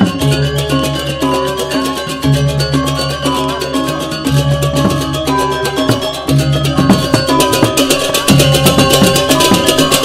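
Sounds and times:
gamelan ensemble playing: 0.0 - 10.0.

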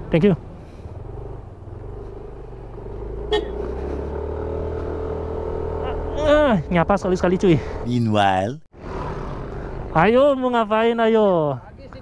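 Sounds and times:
scooter engine accelerating: 1.0 - 6.7.

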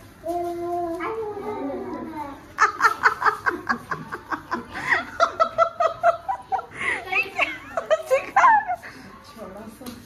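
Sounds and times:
quiet children's voices: 0.2 - 10.0
children yelping and squealing: 0.3 - 2.9.

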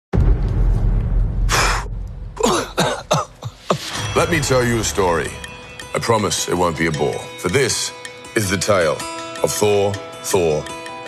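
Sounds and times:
man clearing his throat: 1.5 - 3.9.

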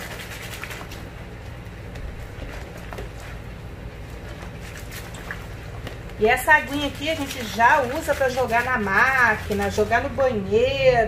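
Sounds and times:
hand sloshing soapy water: 0.0 - 10.0.

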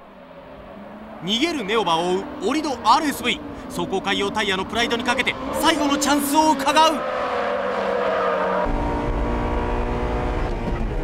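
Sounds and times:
car engines revving high: 0.0 - 11.0
car engine from inside cabin: 1.3 - 11.0.

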